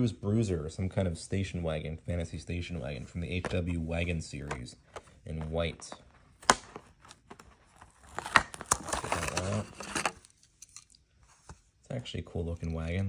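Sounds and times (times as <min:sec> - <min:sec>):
plastic and cardboard tearing: 0:06.4 - 0:10.9
plastic packaging snapping: 0:06.4 - 0:11.0.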